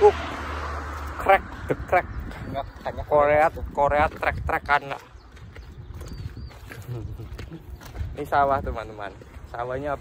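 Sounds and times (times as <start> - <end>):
footsteps on a path: 0.0 - 10.0
wind rumble on microphone: 0.0 - 10.0.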